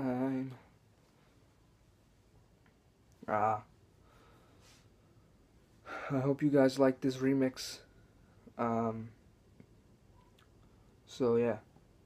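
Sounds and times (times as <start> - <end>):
voice: 0.0 - 0.7, 3.2 - 3.7, 5.9 - 7.9, 8.6 - 9.2, 11.1 - 11.7
soft breath: 4.0 - 6.2.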